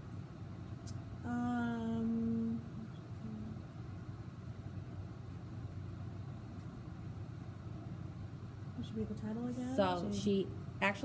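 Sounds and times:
low background rumble: 0:00.0 - 0:11.0
low hummed sound: 0:00.0 - 0:11.0.

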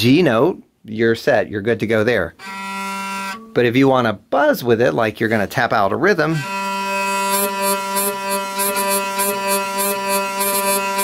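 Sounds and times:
hurdy-gurdy drone: 0:02.4 - 0:03.7, 0:06.3 - 0:11.0
hurdy-gurdy rasping buzz: 0:02.4 - 0:03.8, 0:06.3 - 0:11.0.

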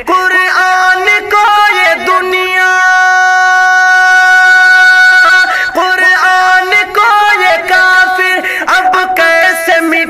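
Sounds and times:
person singing: 0:00.0 - 0:10.0.

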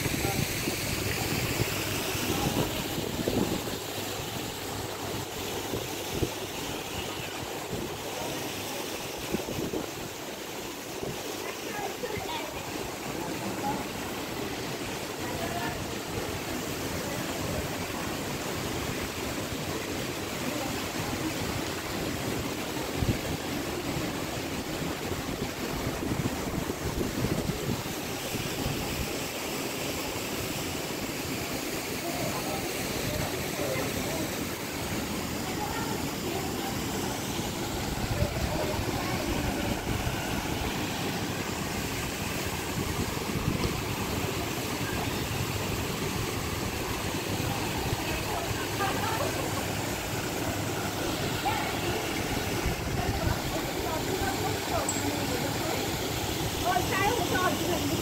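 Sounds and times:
faint voices talking: 0:00.0 - 0:29.3, 0:30.0 - 0:58.0
wind rumble on microphone: 0:25.2 - 0:27.9.

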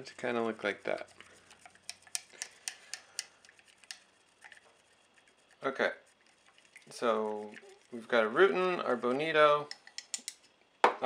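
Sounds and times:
stirrer clicking against glass cup: 0:00.8 - 0:04.1, 0:09.0 - 0:10.5.

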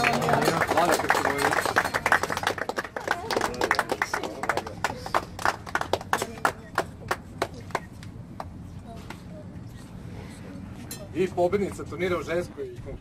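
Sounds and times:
people clapping: 0:00.0 - 0:09.2.

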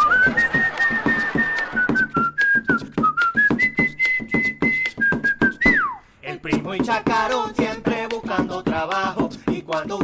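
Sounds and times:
whistled melody: 0:00.0 - 0:06.0
percussive beat: 0:00.0 - 0:10.0.

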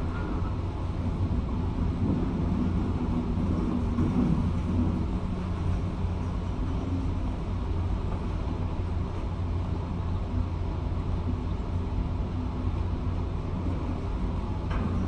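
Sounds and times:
excavator engine and hydraulics rumbling: 0:00.0 - 0:15.0.

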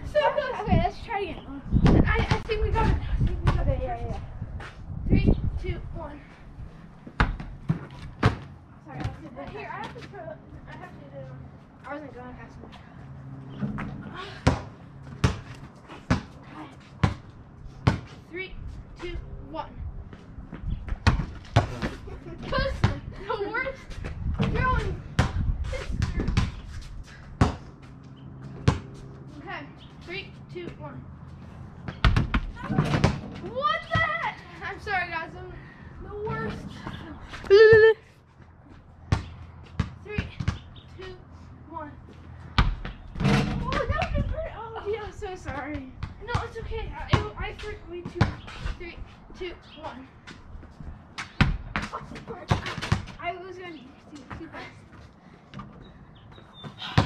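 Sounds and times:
boys talking and calling out: 0:00.0 - 0:04.4, 0:05.0 - 0:06.5, 0:08.8 - 0:13.1, 0:21.8 - 0:26.4, 0:32.5 - 0:38.1, 0:43.5 - 0:50.2, 0:51.9 - 0:55.0
basketball bouncing: 0:07.1 - 0:10.0, 0:13.7 - 0:16.4, 0:17.0 - 0:18.1, 0:24.0 - 0:26.6, 0:27.4 - 0:29.0, 0:31.8 - 0:34.1, 0:39.1 - 0:40.7, 0:42.6 - 0:44.2, 0:45.4 - 0:48.4.

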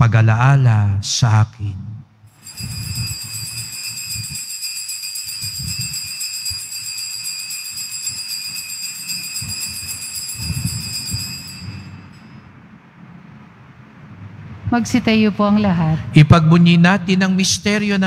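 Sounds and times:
altar bells jingling: 0:02.3 - 0:12.5.

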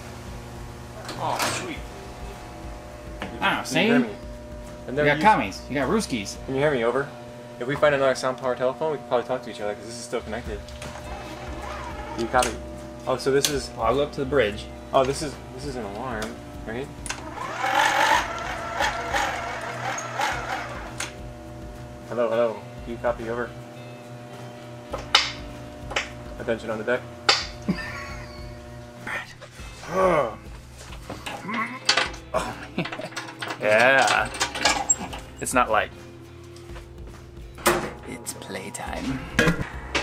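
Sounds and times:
hand crank clicking and rattling: 0:17.1 - 0:21.0, 0:31.2 - 0:35.3.

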